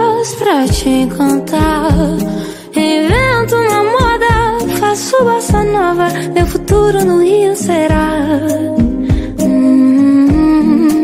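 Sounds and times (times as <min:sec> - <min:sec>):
pop backing music: 0:00.0 - 0:11.0.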